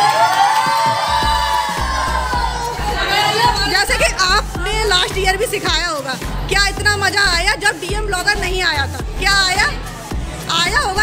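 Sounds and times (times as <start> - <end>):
women and girls cheering: 0.0 - 4.3
music with bass beat: 1.0 - 11.0.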